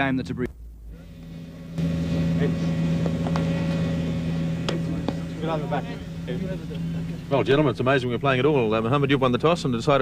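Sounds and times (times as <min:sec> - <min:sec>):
steady low hum: 0:00.5 - 0:10.0.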